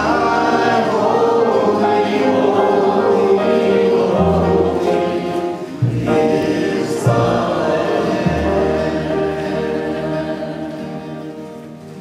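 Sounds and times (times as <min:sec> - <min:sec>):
acoustic guitar: 0:00.0 - 0:12.0
group singing a hymn: 0:00.0 - 0:12.0.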